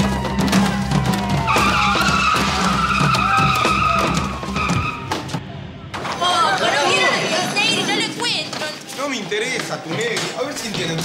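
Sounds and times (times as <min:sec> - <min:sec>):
car tyres screeching: 0:01.4 - 0:05.5.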